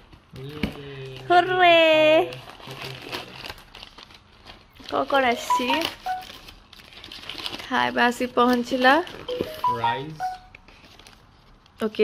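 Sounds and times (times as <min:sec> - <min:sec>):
paper crinkling and rustling: 0:00.0 - 0:09.8, 0:10.6 - 0:11.9.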